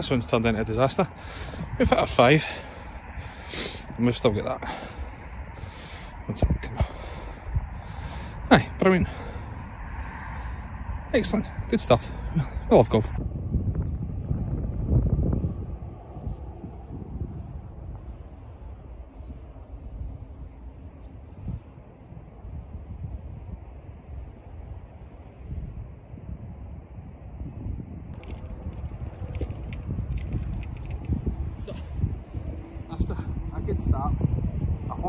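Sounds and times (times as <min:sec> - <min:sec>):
wind buffeting microphone: 0:00.0 - 0:35.0.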